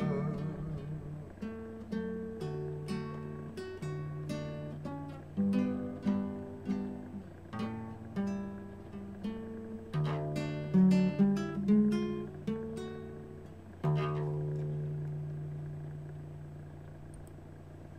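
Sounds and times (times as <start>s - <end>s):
acoustic guitar picking: 0.0s - 17.9s.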